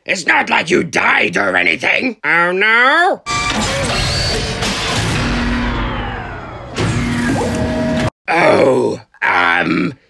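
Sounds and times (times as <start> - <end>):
sudden blast: 3.3 - 8.1
noisy blast with falling tones: 4.4 - 8.1.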